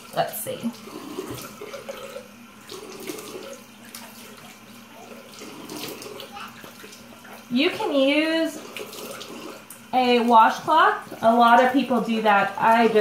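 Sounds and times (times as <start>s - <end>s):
tap water running into sink: 0.0s - 13.0s.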